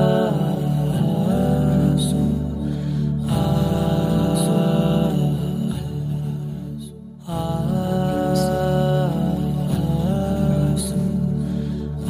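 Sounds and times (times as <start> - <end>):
wordless sung aah notes: 0.0 - 12.0.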